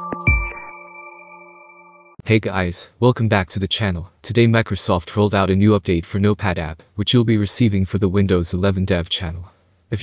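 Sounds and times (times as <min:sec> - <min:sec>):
bright ping-like tones: 0:00.0 - 0:02.2
electronic intro music: 0:00.0 - 0:02.2.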